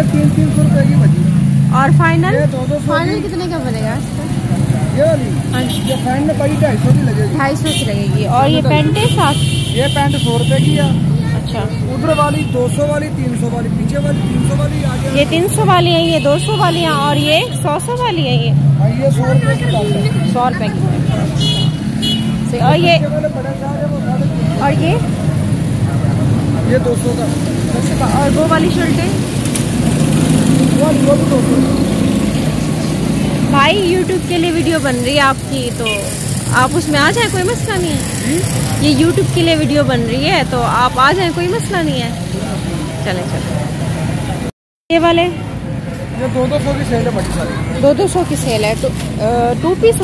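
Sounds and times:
people talking: 0:00.0 - 0:21.4, 0:22.5 - 0:25.0, 0:26.6 - 0:29.2, 0:33.5 - 0:43.6, 0:46.2 - 0:50.0
street market rumble: 0:00.0 - 0:50.0.

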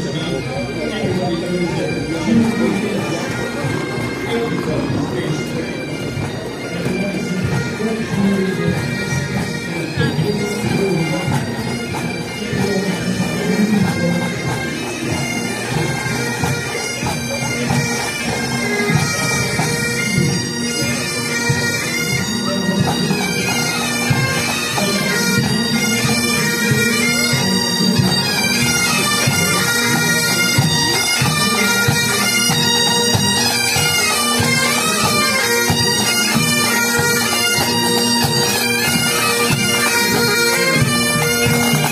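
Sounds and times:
bagpipes playing a march: 0:00.0 - 0:41.9.

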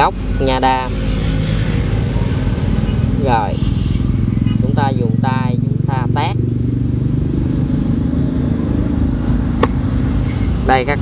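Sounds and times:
engine running steadily: 0:01.9 - 0:10.9.

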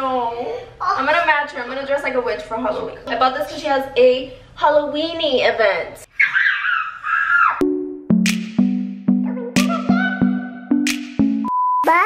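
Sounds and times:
electronic music with steady beat: 0:07.6 - 0:12.0.

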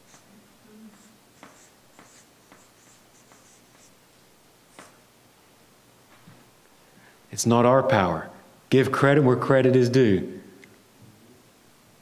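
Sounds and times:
marker squeaking on paper: 0:00.0 - 0:00.3, 0:00.9 - 0:03.9
pen tapping on paper: 0:01.4 - 0:02.7, 0:03.3 - 0:03.5, 0:04.8 - 0:05.0.

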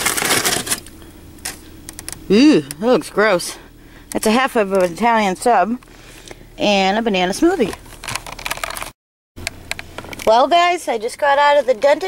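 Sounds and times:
paper bag rustling: 0:00.0 - 0:01.7, 0:07.8 - 0:09.0.

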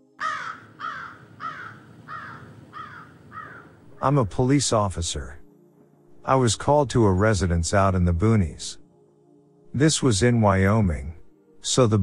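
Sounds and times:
bird harsh calls: 0:00.2 - 0:04.0.

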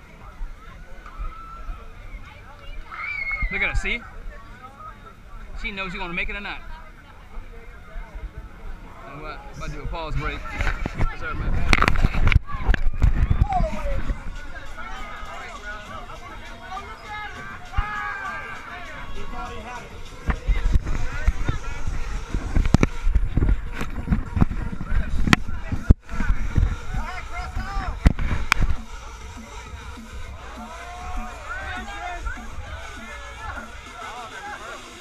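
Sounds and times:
crowd chatter: 0:00.0 - 0:35.0
camera handling rumble: 0:10.4 - 0:13.4, 0:22.4 - 0:26.4
background music: 0:12.9 - 0:35.0.

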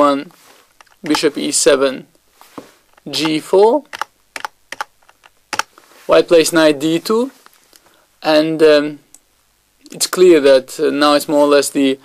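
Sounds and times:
computer keys tapping: 0:03.2 - 0:05.7.

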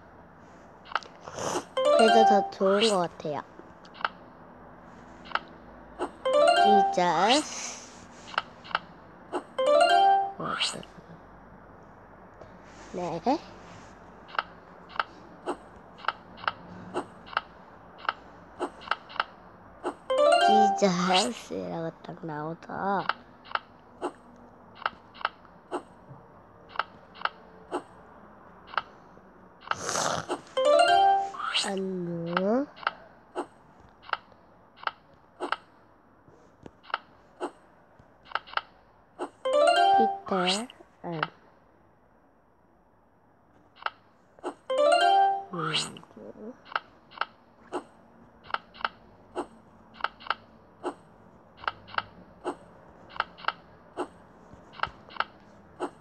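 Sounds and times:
game soundtrack clicking rhythm: 0:01.8 - 0:02.6, 0:06.2 - 0:07.2, 0:09.6 - 0:10.4, 0:20.1 - 0:20.9, 0:39.4 - 0:40.4.

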